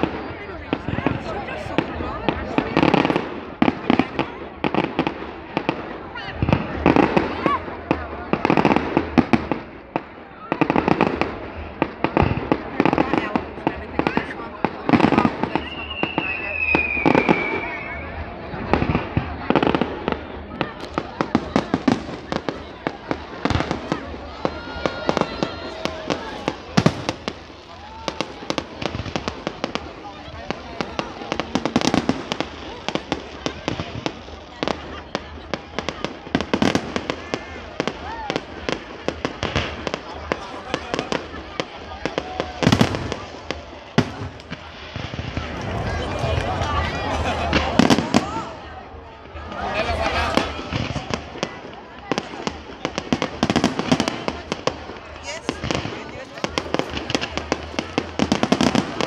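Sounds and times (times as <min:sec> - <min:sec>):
fireworks bangs and crackling: 0:00.0 - 0:59.0
firework whistle: 0:15.0 - 0:18.4.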